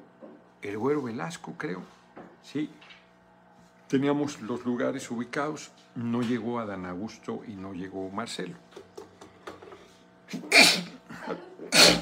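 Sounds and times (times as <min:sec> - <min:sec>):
man sneezing loudly: 0:10.3 - 0:11.0, 0:11.7 - 0:12.0.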